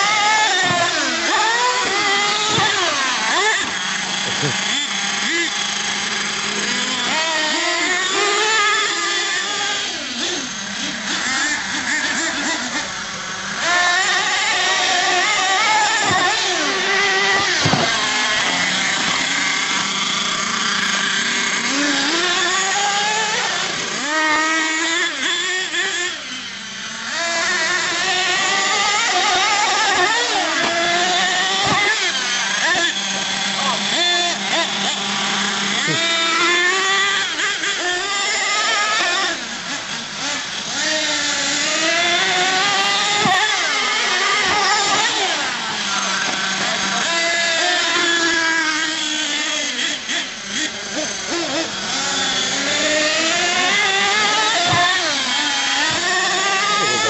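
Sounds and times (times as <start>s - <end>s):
small model engines revving: 0.0s - 57.0s.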